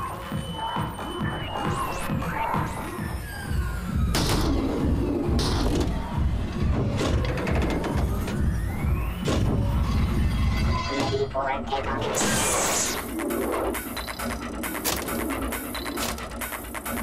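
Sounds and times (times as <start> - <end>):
electronic music with pulsing bass: 0.0 - 17.0.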